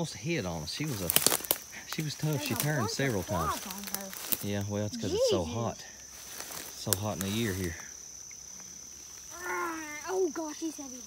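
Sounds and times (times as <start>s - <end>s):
insect trilling: 0.0s - 11.0s.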